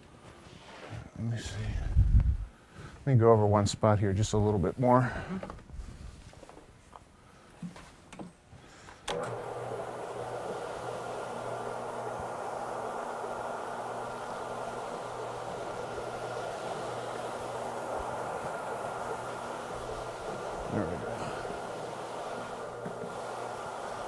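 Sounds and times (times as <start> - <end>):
carpet cleaning machine humming: 9.1 - 24.0.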